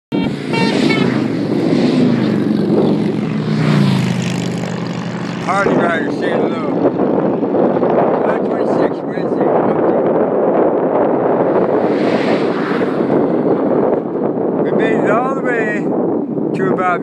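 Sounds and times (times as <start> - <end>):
motorcycle engines droning by: 0.2 - 15.3.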